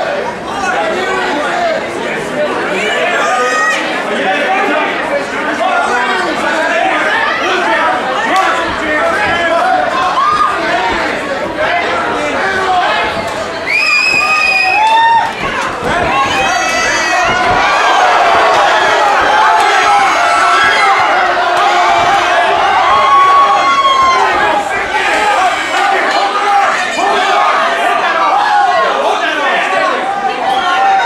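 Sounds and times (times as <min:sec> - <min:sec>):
crowd shouting and cheering: 0:00.0 - 0:31.0
high held yell: 0:13.6 - 0:31.0.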